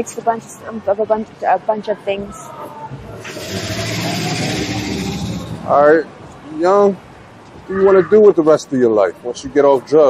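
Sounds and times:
motor vehicle driving past: 0:03.0 - 0:06.0.

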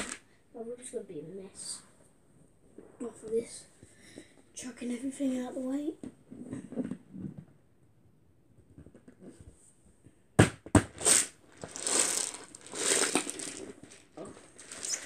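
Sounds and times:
plastic container rustling and scuffing: 0:11.6 - 0:15.0.

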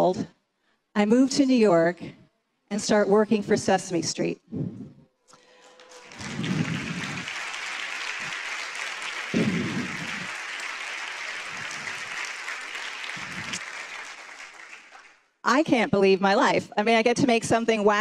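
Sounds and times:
audience applauding: 0:05.4 - 0:15.3.

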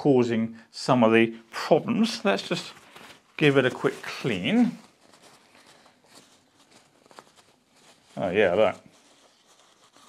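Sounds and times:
tissue rubbing on plastic: 0:01.6 - 0:10.0.

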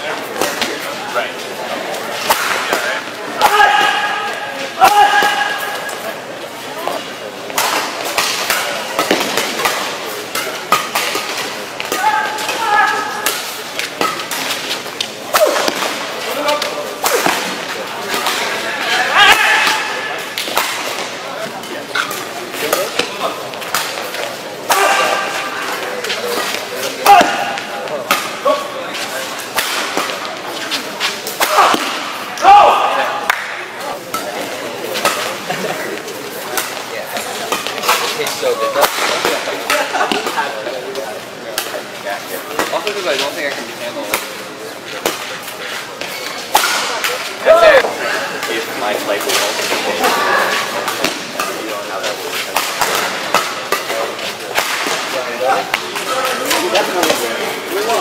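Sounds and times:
voices: 0:00.0 - 0:58.0
rackets striking shuttlecock: 0:07.5 - 0:18.6, 0:19.2 - 0:28.5, 0:50.5 - 0:57.2.

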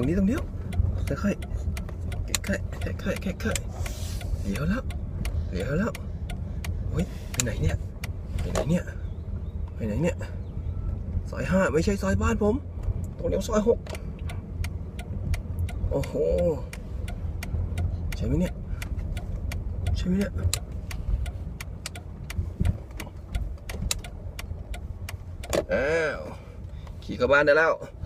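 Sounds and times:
sharp clicks: 0:00.0 - 0:08.9, 0:13.8 - 0:25.7
car cabin rumble: 0:00.0 - 0:28.0.

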